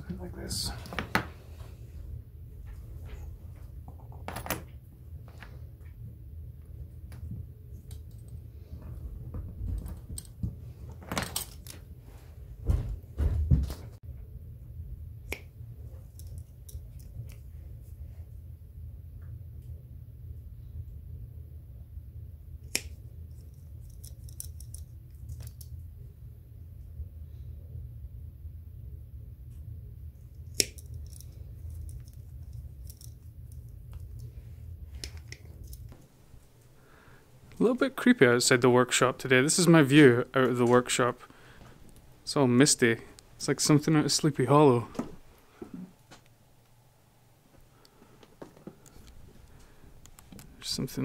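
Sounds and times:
steady low hum: 0.0 - 51.0.

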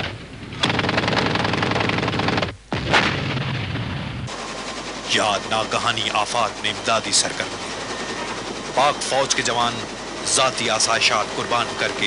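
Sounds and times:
gunshot with rumble: 0.0 - 4.3.

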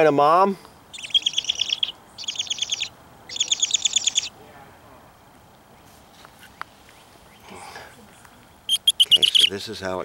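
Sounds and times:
bird chattering: 0.9 - 4.4, 8.1 - 9.6.

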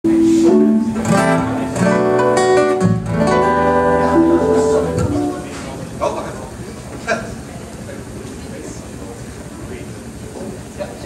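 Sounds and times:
electric bass: 0.1 - 5.5
strummed acoustic guitar: 0.1 - 5.5
live band playing: 0.1 - 5.8.

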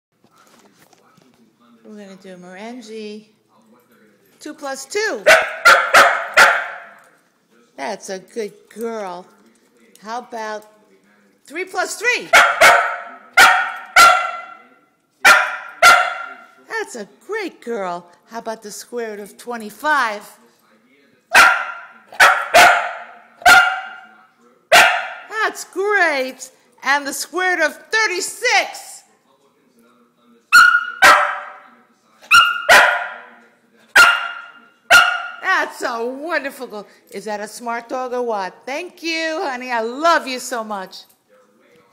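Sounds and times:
dog barking: 5.2 - 7.0, 12.3 - 16.5, 21.3 - 24.1, 24.7 - 25.3, 30.5 - 31.7, 32.3 - 35.4.

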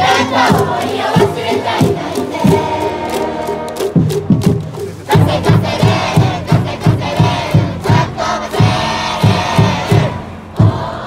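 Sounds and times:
bass drum beating: 0.0 - 11.0
cheering music: 0.0 - 11.0
crowd chanting and shouting: 0.0 - 11.0.

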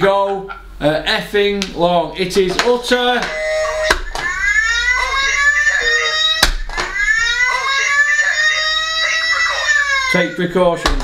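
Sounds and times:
horn-like tone gliding up: 3.2 - 4.2.

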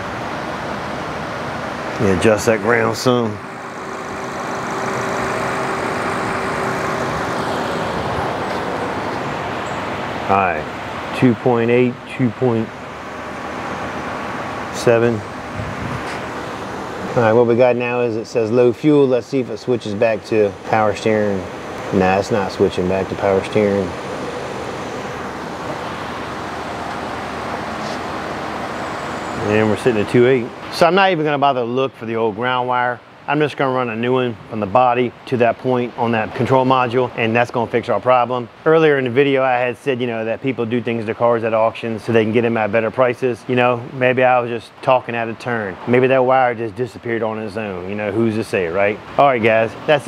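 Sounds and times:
car engine running: 0.0 - 30.9.

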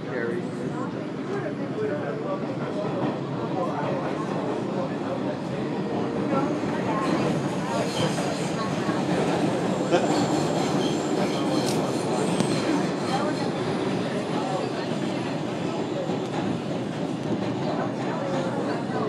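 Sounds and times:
subway car rumble and rattle: 0.0 - 19.0.

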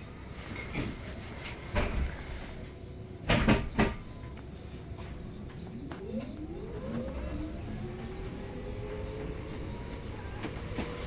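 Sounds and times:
cabin and road noise: 0.0 - 11.0
electric bus motor whine: 4.0 - 11.0.

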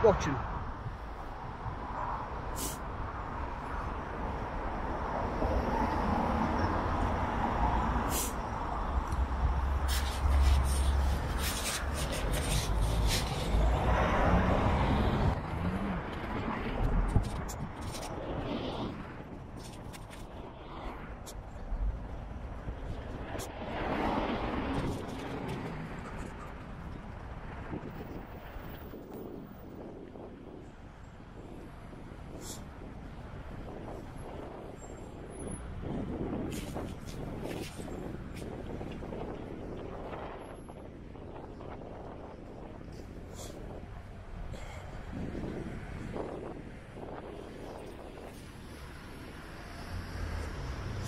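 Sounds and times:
wind rumble on microphone: 0.4 - 51.0
car passing: 3.0 - 19.3, 20.3 - 29.8, 44.6 - 51.0.

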